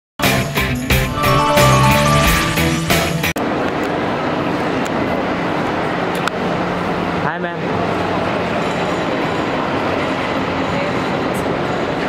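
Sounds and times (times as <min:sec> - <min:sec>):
airport terminal rumble and hiss: 0:03.4 - 0:12.0.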